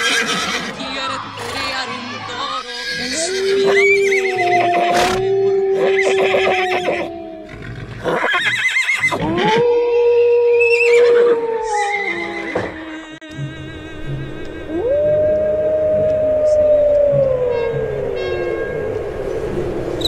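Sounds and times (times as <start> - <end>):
horse whinnies: 0.0 - 0.8, 2.6 - 9.6.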